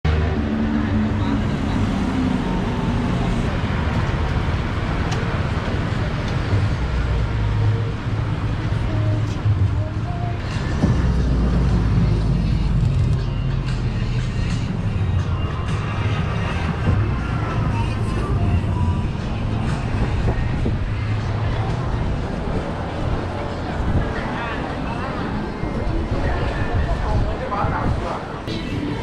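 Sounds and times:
road traffic rumble: 0.0s - 29.0s
people's voices: 0.1s - 29.0s.

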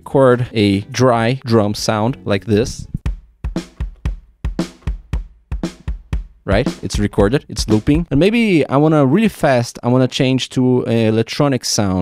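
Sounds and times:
sampled drum kit beat: 1.8s - 8.7s.

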